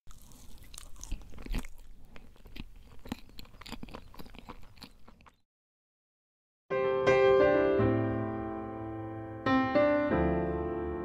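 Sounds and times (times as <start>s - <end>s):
person chewing food: 0.1s - 5.4s.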